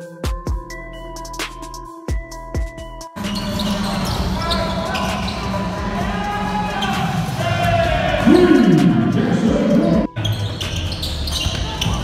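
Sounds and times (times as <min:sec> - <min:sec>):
voices echoing in hall: 0:03.2 - 0:12.0.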